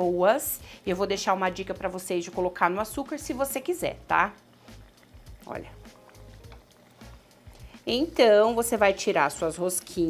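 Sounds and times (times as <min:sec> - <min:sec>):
dough frying in hot oil: 0:00.0 - 0:10.0
soft background music: 0:00.0 - 0:10.0.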